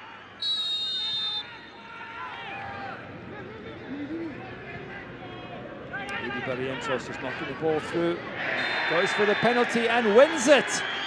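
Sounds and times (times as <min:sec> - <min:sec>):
stadium background noise: 0:00.0 - 0:11.0
referee's whistle blast: 0:00.4 - 0:01.7
players shouting: 0:04.7 - 0:11.0.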